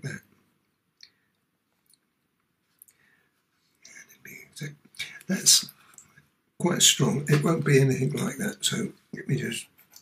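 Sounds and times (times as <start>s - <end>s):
man murmuring quietly: 3.8s - 6.1s.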